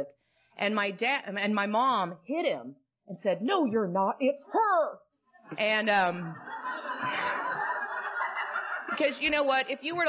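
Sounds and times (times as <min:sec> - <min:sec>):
audience laughing: 0:06.2 - 0:09.4.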